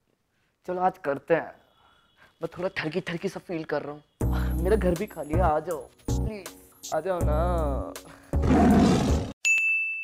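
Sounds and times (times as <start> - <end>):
roar sound effect: 8.4 - 9.4.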